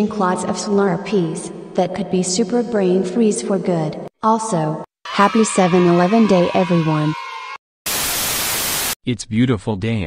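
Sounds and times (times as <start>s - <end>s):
static hiss burst: 7.9s - 9.0s.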